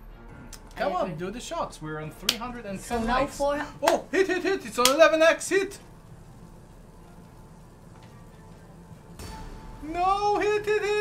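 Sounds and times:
faint slot game music: 0:00.0 - 0:11.0.

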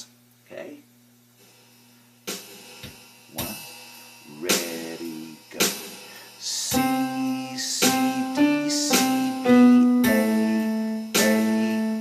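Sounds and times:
drum groove: 0:01.4 - 0:12.0
drum count-in hits: 0:02.3 - 0:12.0
electric keyboard: 0:06.7 - 0:12.0.

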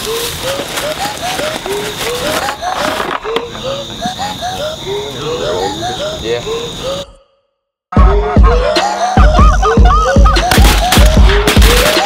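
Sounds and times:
dry cornstalks crackling: 0:00.0 - 0:04.4, 0:10.5 - 0:12.0.

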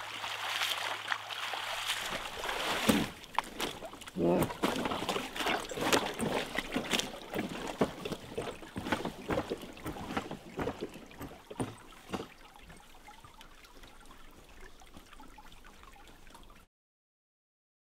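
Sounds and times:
lake water lapping and sloshing: 0:00.0 - 0:16.6
small splashes and knocks: 0:00.0 - 0:16.6.

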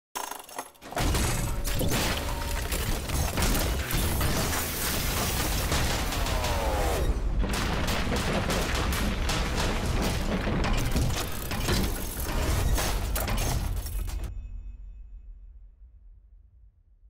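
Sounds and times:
mechanical clanking and grinding: 0:00.2 - 0:14.3.

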